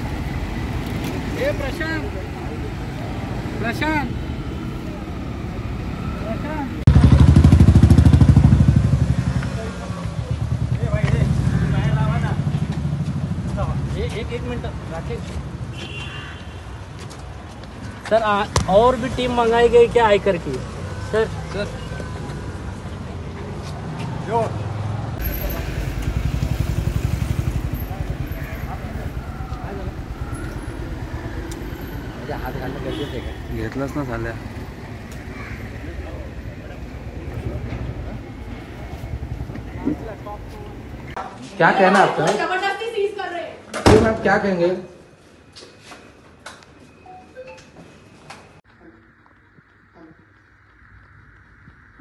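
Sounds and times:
auto-rickshaw engine rumble: 0.0 - 16.0, 24.3 - 41.2
street traffic noise: 0.0 - 52.0.

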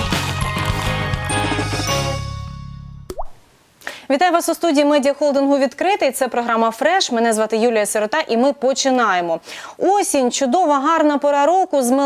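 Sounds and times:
plop sound effect: 3.1 - 3.4.

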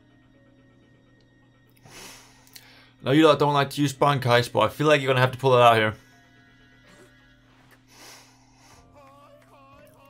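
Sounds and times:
quiet soundtrack music: 0.0 - 10.0.

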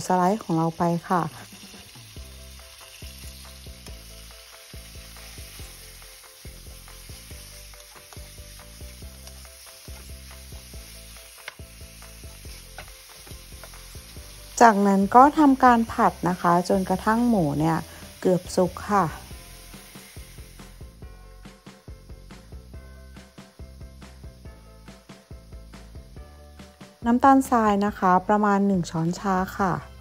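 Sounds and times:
meat sizzling in oil: 0.0 - 30.0.

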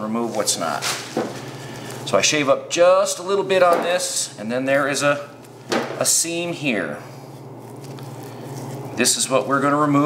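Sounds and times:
low hum of room noise: 0.0 - 10.0.

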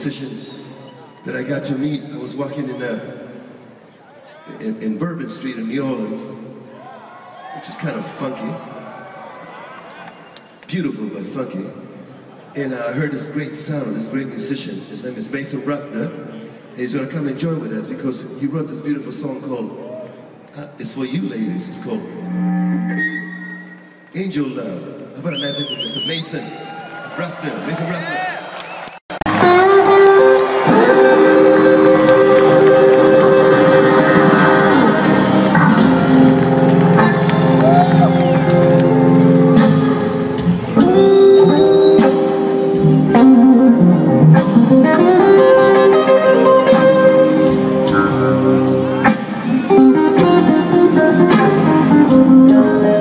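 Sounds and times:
electric guitar: 29.3 - 53.0
keyboard chords: 29.3 - 53.0.

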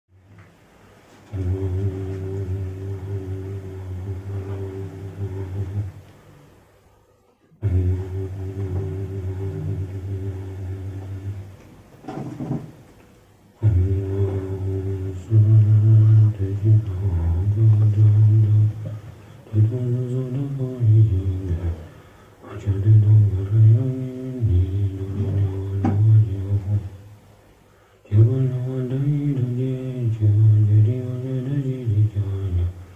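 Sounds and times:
deep voice chanting low note: 1.3 - 6.1, 7.6 - 11.6, 13.6 - 27.1.

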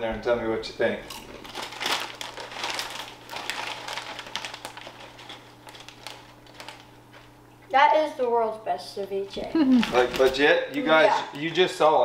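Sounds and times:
crunchy chewing of a chip: 1.0 - 7.4, 9.8 - 10.4.

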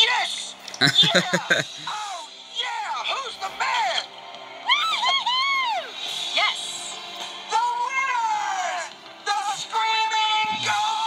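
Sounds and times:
cartoon background music: 0.0 - 4.0, 4.6 - 11.0.

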